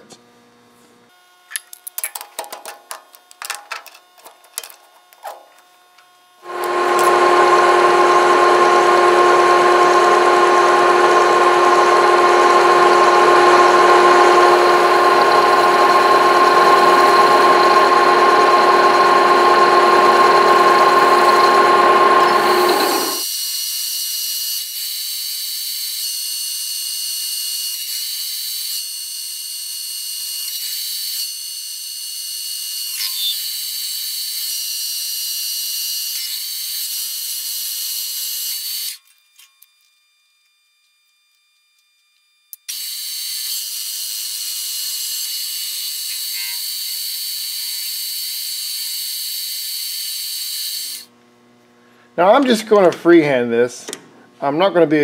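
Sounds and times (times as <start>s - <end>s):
lathe cutting noise: 6.4s - 23.4s, 50.5s - 51.1s
metal lathe whine: 6.4s - 23.7s, 50.1s - 51.1s.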